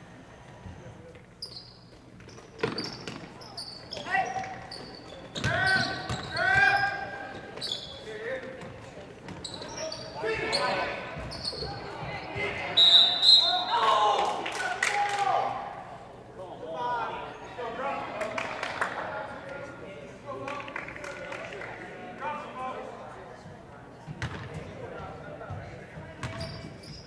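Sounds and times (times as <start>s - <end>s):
short high squeaks: 1.4s - 7.0s.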